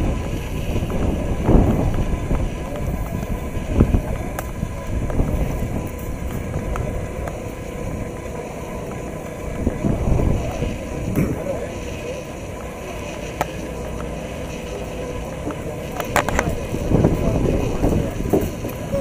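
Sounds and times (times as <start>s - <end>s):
wind buffeting microphone: 0.0s - 14.5s, 15.2s - 19.0s
people chattering: 0.0s - 19.0s.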